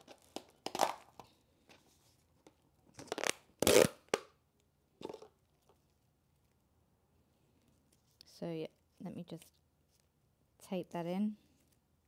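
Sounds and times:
plastic cup crackling: 0.0s - 1.3s, 2.4s - 4.4s, 5.0s - 5.8s.

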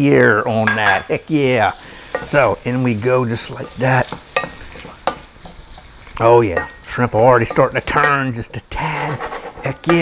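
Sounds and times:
wooden spoon stirring in pan: 0.9s - 10.0s
seafood sizzling in butter: 1.2s - 10.0s
spoon knocking on pan: 2.1s - 2.4s, 4.1s - 5.9s.

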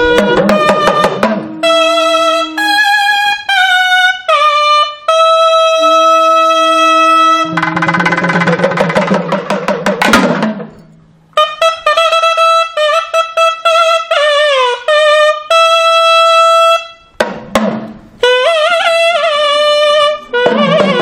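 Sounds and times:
rapid drumming: 0.0s - 2.3s, 7.4s - 10.8s, 17.2s - 18.0s, 20.4s - 21.0s
wind instrument melody: 0.0s - 9.3s, 11.3s - 17.2s, 17.9s - 21.0s.

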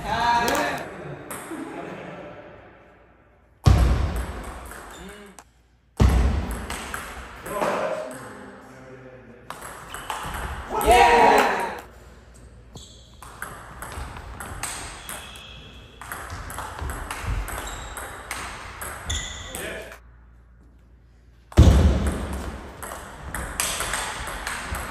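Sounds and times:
person shouting: 10.7s - 11.8s.

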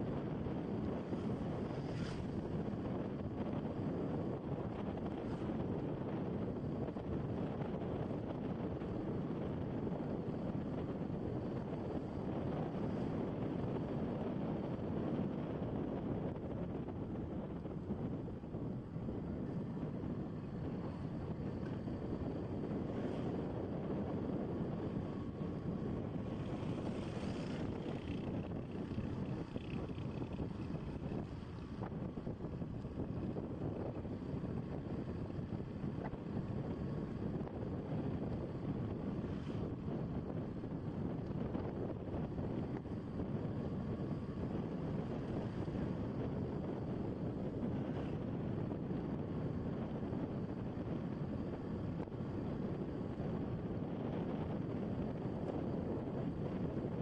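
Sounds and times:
tyres on road: 0.0s - 56.9s
wind buffeting microphone: 0.0s - 57.0s.

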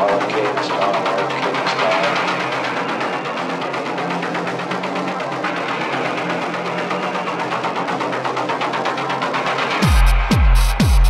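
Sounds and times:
industrial techno music: 0.0s - 11.0s.

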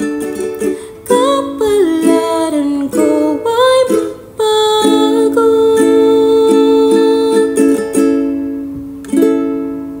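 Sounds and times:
ukulele chords ringing: 0.0s - 10.0s.

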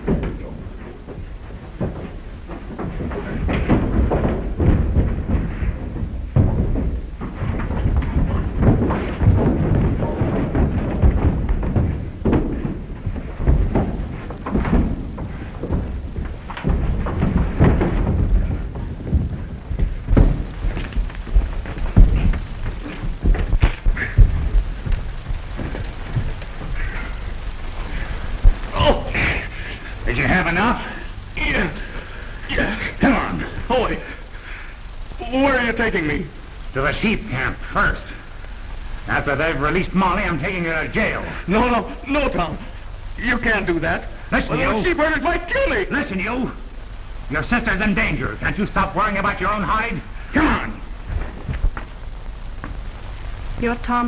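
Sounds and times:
bodies falling down wooden stairs: 0.0s - 29.9s
punches thudding: 1.8s - 29.9s.

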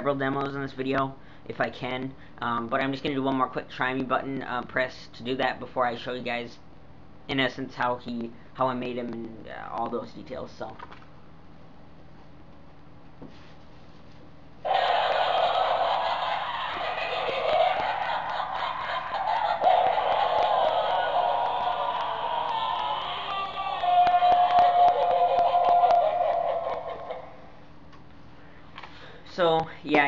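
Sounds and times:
electronic laugh through tinny speaker: 14.7s - 27.5s.

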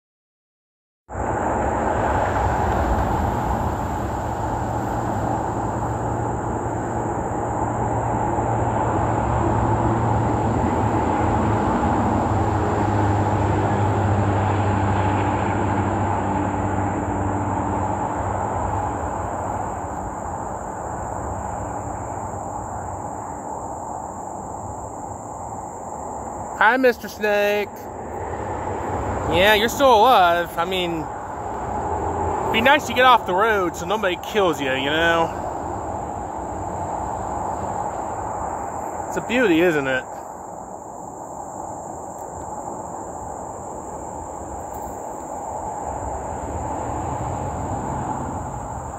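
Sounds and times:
car road and engine rumble: 1.1s - 48.9s.

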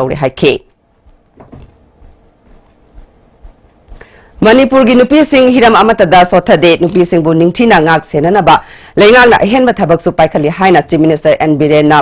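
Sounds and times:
low background noise: 0.0s - 12.0s
person speaking: 0.0s - 12.0s
faint knock: 1.3s - 2.6s.

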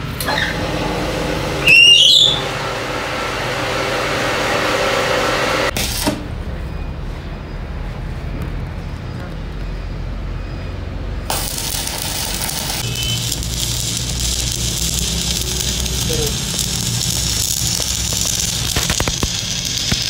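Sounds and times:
welding arc crackling hiss: 11.2s - 20.0s.

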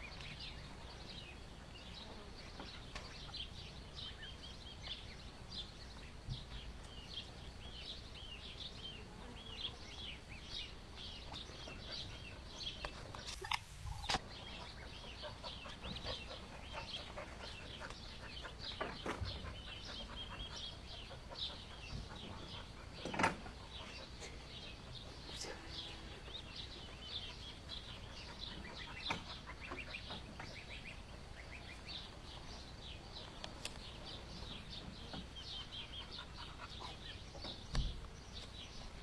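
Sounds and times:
duckling peeping: 9.8s - 39.0s.

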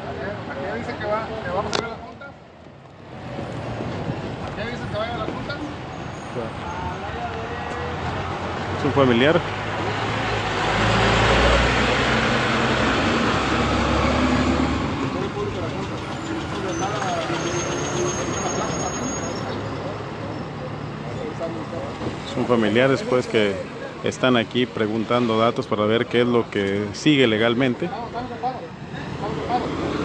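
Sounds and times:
large vehicle passing: 3.0s - 24.0s.

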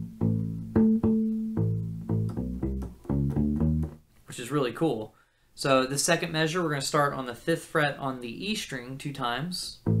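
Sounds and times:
bass ukulele funk bass line: 0.0s - 4.1s, 9.8s - 10.0s.

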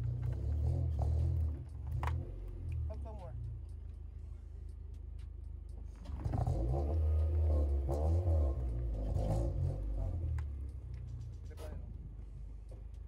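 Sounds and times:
car engine idling and revving: 0.0s - 13.0s.

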